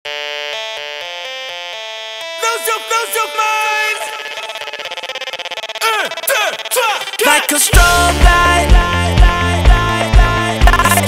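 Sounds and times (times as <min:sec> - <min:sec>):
synthesizer playing held notes: 0:00.1 - 0:11.0.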